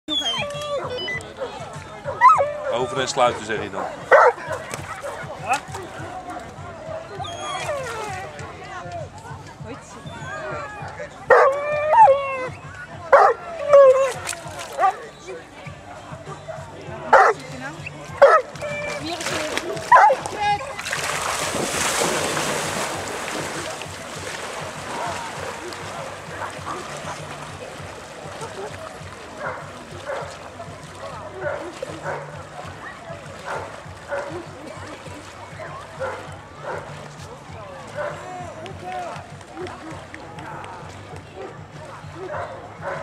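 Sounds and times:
dog yelping: 0:00.1 - 0:01.2, 0:07.2 - 0:07.9
water splashing: 0:00.1 - 0:16.5, 0:17.1 - 0:43.0
dog barking: 0:03.8 - 0:05.2, 0:11.3 - 0:12.1, 0:13.1 - 0:13.9, 0:16.5 - 0:17.4, 0:18.2 - 0:18.5, 0:19.9 - 0:20.2, 0:42.2 - 0:43.0
dog barking loudly: 0:18.2 - 0:18.5.

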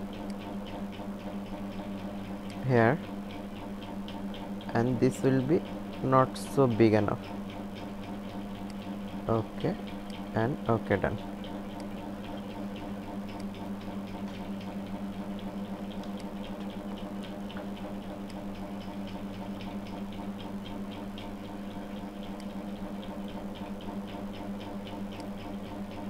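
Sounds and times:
steady low hum: 0:00.0 - 0:26.0
computer mouse clicking: 0:00.1 - 0:02.7, 0:03.3 - 0:10.3, 0:11.1 - 0:26.0.

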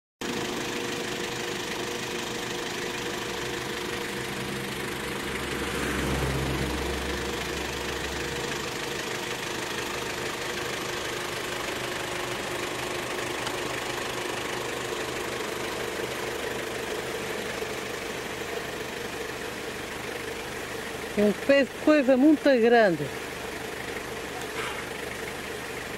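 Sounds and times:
vehicle engine idling: 0:00.2 - 0:25.9
deep low rumble: 0:03.2 - 0:09.1.

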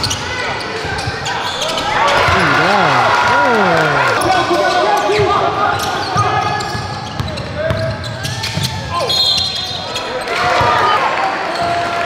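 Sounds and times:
people shouting: 0:02.2 - 0:04.3.

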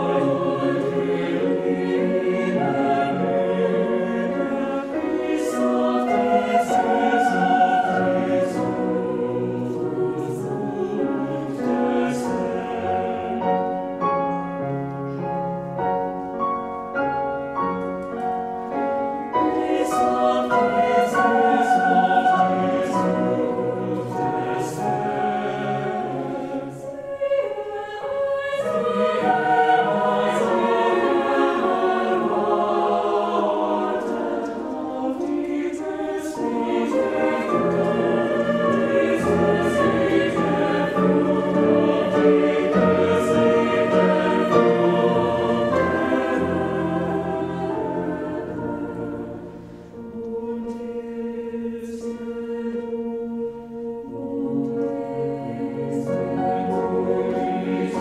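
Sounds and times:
mixed choir singing: 0:00.0 - 0:14.7, 0:15.4 - 0:58.0
piano accompaniment: 0:00.0 - 0:58.0.

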